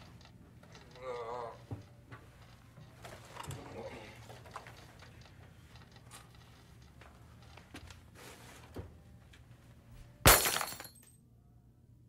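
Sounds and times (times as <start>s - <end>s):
glass smashing on carpet: 10.3s - 11.0s.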